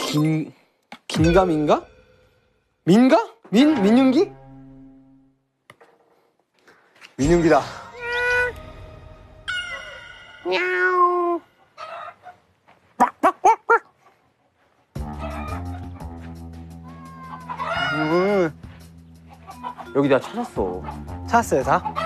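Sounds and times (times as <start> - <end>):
background music: 1.1 - 5.5, 7.2 - 11.7, 14.9 - 22.0
man imitating cat meow: 10.4 - 11.4
man clucking like chicken: 11.3 - 14.4, 15.0 - 16.2, 17.1 - 18.6, 19.3 - 22.0.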